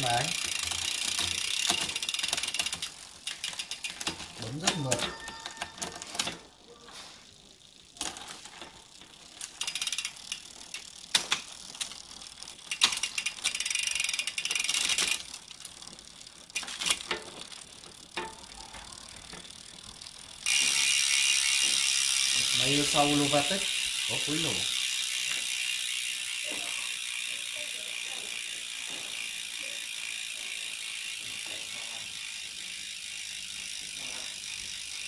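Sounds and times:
freewheel buzz: 0.0s - 5.3s, 7.2s - 35.0s
freehub pawls clicking: 0.0s - 6.6s, 7.3s - 35.0s
bike chain running: 0.0s - 35.0s.

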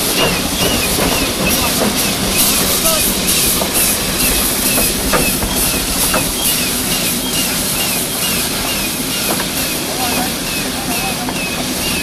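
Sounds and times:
running gear squeaks: 0.0s - 9.2s
steam hissing: 0.0s - 12.0s
steam locomotive chuffing: 0.0s - 12.0s.

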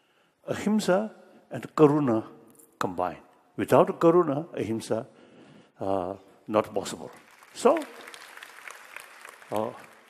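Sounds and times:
audience applauding: 7.0s - 10.0s.

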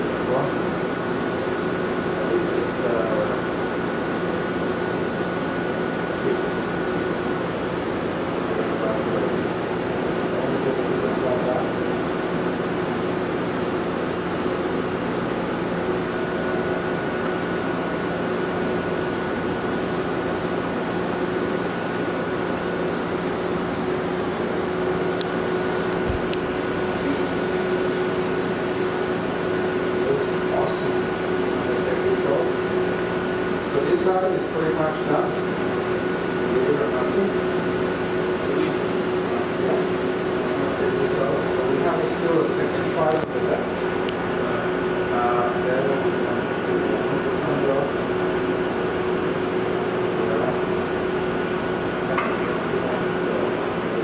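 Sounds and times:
equipment hum and rushing: 0.0s - 54.0s
faint high whine: 0.0s - 54.0s.

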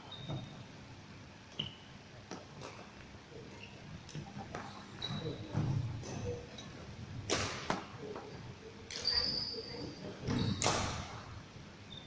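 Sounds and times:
shoe squeak: 0.0s - 0.7s, 1.5s - 1.9s, 4.6s - 6.4s, 8.9s - 10.8s
rackets hitting shuttlecock: 7.3s - 7.8s.

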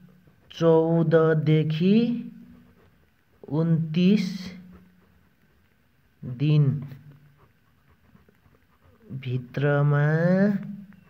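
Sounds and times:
pen scratching on paper: 0.0s - 5.8s, 7.2s - 10.6s.

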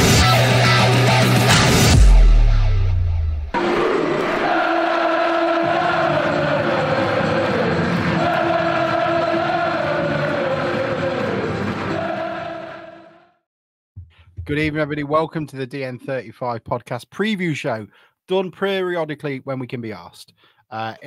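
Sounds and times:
football crowd singing a chant: 3.6s - 13.4s.

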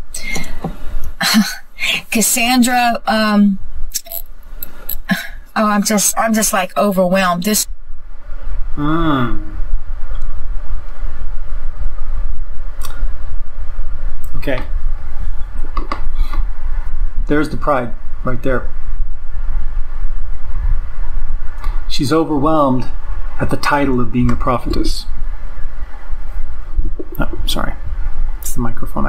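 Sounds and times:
microphone handling rumble: 0.0s - 29.0s
car cabin rumble: 26.7s - 28.2s
dull thump on microphone: 26.8s - 27.5s.

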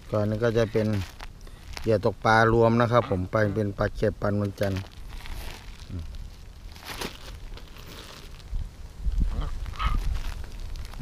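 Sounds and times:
plastic bags rustling: 0.0s - 2.5s, 4.3s - 11.0s.

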